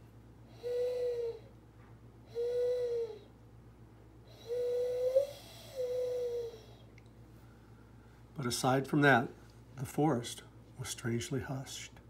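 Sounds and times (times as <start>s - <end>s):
person imitating dove coos: 0.5s - 1.5s, 2.3s - 3.3s, 4.4s - 6.8s.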